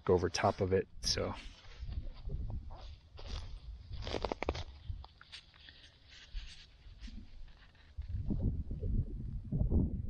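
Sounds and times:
wind rumble on microphone: 0:01.8 - 0:05.1, 0:07.0 - 0:10.0.

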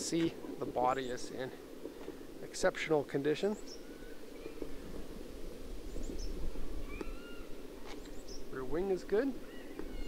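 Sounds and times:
bird chirps: 0:03.6 - 0:04.6, 0:05.9 - 0:08.6, 0:09.4 - 0:10.0.

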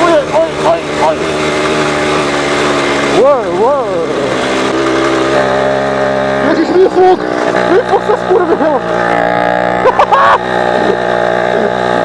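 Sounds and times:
two-stroke moped engine running: 0:00.0 - 0:12.0.

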